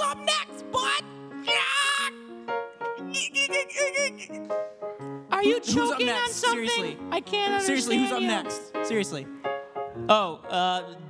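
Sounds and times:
background music with held notes: 0:00.0 - 0:11.0
person saying yeah comically: 0:03.0 - 0:04.4, 0:05.4 - 0:08.7.

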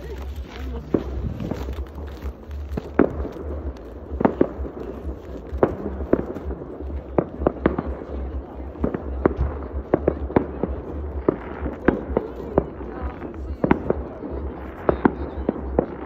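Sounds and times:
fireworks banging: 0:00.0 - 0:16.0.

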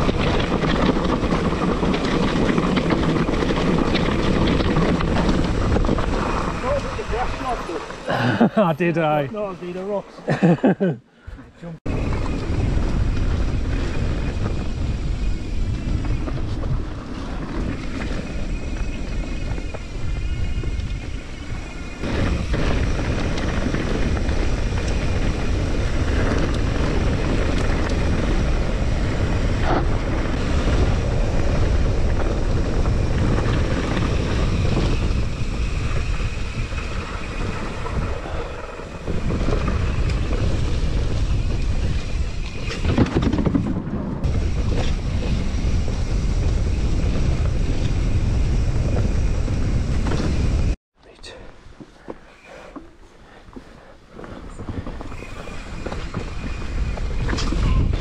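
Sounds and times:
wind rushing over microphone: 0:00.0 - 0:10.0, 0:11.9 - 0:51.8, 0:52.4 - 0:58.0
bike tyres rolling on gravel: 0:00.0 - 0:10.6, 0:11.9 - 0:50.8, 0:51.6 - 0:58.0.

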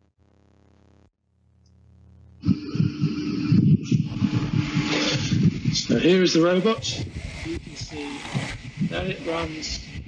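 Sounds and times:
steady room hum: 0:00.3 - 0:10.0
irregular rumbling and hiss: 0:02.4 - 0:10.0.

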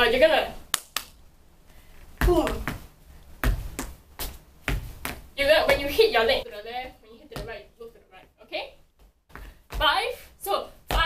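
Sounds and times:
hand slapping leg: 0:00.7 - 0:01.2
footsteps on hard floor: 0:08.9 - 0:10.0.

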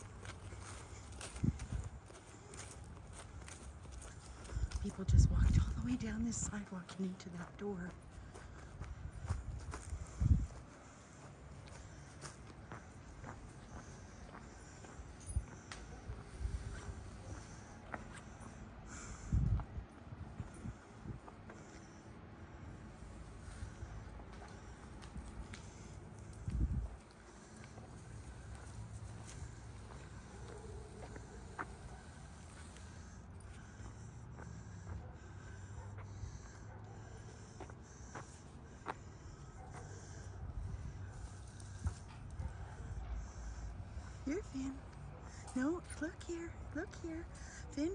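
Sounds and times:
steady low rumble: 0:00.0 - 0:47.8
footsteps on pavement: 0:00.0 - 0:47.9
footsteps on concrete: 0:23.5 - 0:43.1.

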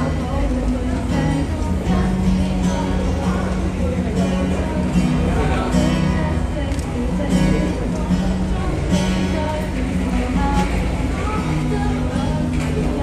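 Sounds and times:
amplified acoustic guitar strumming: 0:00.0 - 0:13.0.

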